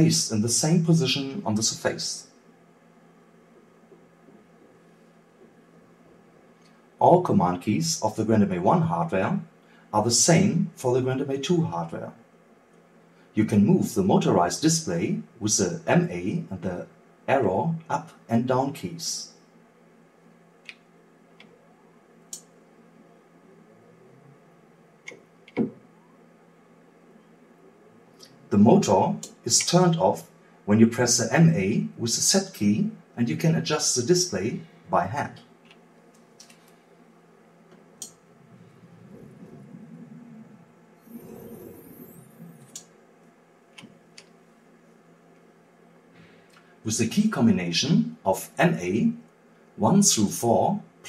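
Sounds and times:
low steady hum: 0.0 - 51.0
motorized display mechanical rumble: 36.6 - 46.1.

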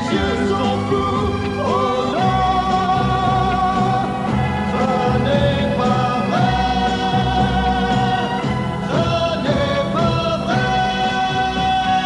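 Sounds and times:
pop band accompaniment: 0.0 - 12.0.

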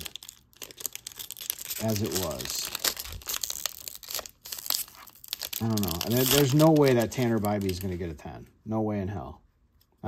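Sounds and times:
foil wrapper tearing and crinkling: 0.0 - 8.1.

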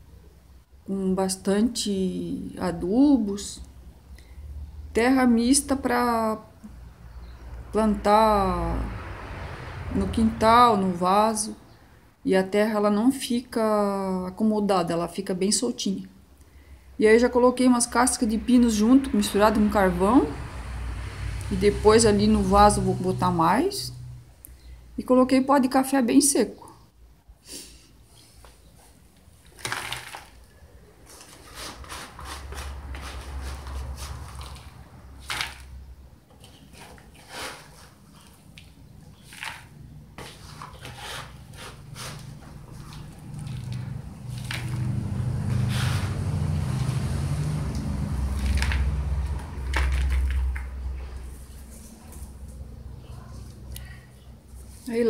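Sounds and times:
potting mix crunching and rustling: 29.4 - 52.3.

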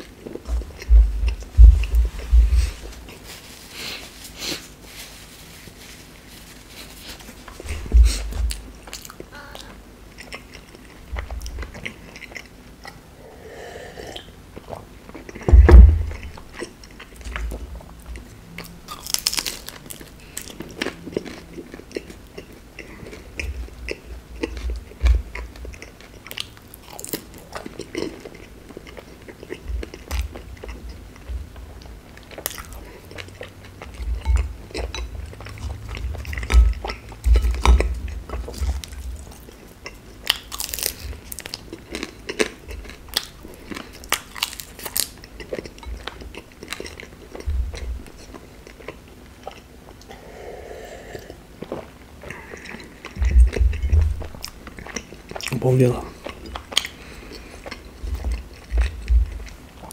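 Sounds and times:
crunchy bites and chewing: 14.2 - 30.9, 32.2 - 50.2
fried crust crackling: 18.9 - 20.9, 38.4 - 45.2.

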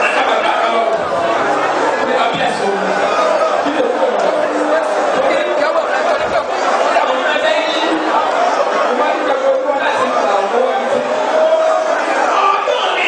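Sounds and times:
congregation praying aloud: 0.0 - 13.0.

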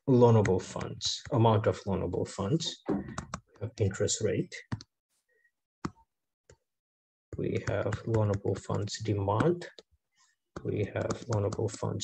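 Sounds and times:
stylus tapping on tablet screen: 7.3 - 9.9, 10.5 - 12.0.

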